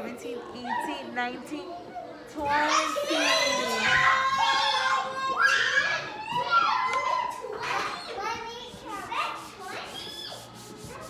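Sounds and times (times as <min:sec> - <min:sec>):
young children talking: 0:00.0 - 0:11.0.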